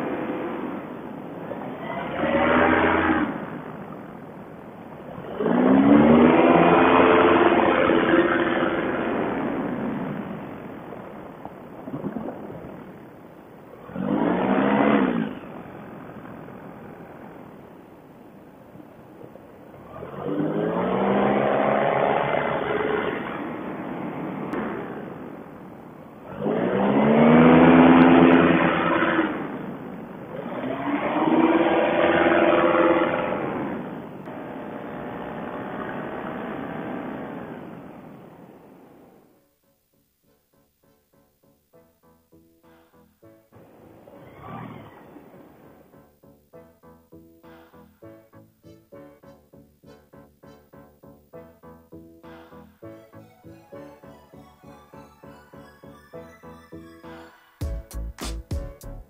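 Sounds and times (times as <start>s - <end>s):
paramotor engine revving: 0.0s - 3.9s, 5.0s - 10.8s, 13.8s - 16.3s, 19.8s - 25.1s, 26.2s - 34.0s.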